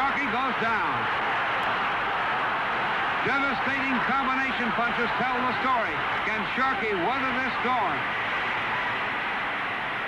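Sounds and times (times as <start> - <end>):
crowd roaring: 0.0 - 10.0.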